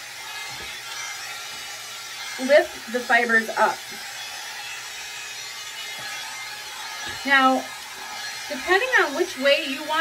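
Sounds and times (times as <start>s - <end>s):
hot air brush blowing air: 0.0s - 10.0s.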